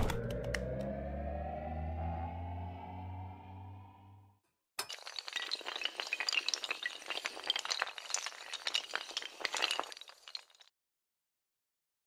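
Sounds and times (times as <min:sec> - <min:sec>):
small tiles clattering: 0:04.8 - 0:10.7.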